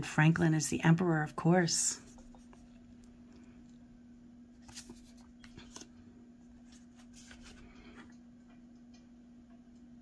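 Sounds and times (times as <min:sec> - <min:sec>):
steady low hum: 0:00.0 - 0:10.0
cards sliding against each other: 0:04.6 - 0:05.9, 0:06.7 - 0:07.7.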